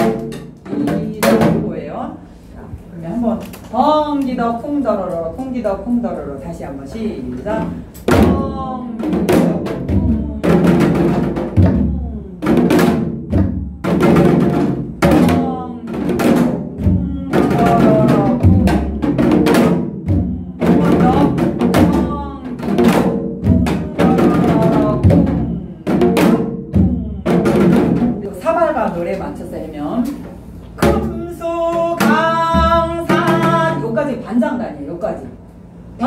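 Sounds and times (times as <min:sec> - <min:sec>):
woman singing: 0:08.1 - 0:25.8, 0:26.8 - 0:27.9, 0:30.8 - 0:34.0.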